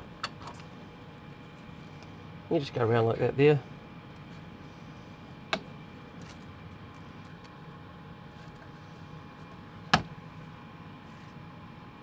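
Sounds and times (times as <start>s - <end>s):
steady fan noise: 0.0s - 12.0s.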